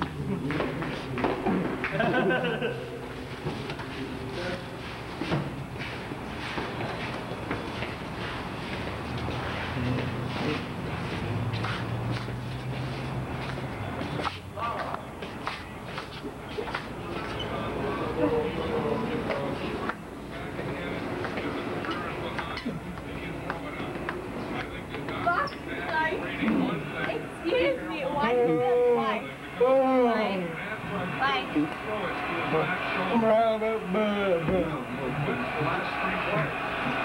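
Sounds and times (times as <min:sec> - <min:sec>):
indistinct chatter: 0:00.0 - 0:37.0
footsteps: 0:03.2 - 0:17.4, 0:19.2 - 0:27.2.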